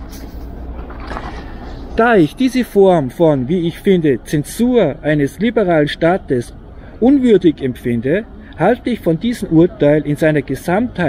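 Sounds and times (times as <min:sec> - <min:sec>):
city traffic rumble: 0:00.0 - 0:11.0.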